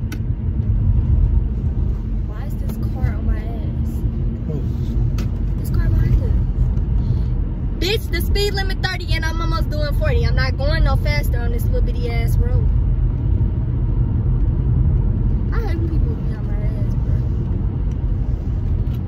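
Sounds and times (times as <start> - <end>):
car cabin rumble: 0.0 - 19.0.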